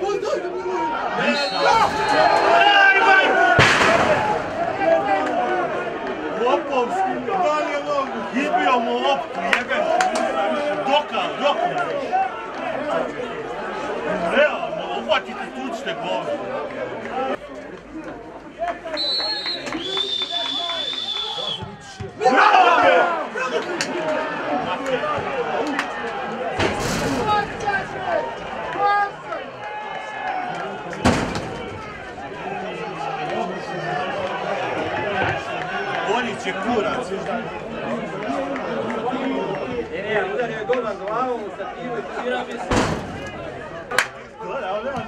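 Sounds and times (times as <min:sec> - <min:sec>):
players and spectators shouting: 0:00.0 - 0:45.0.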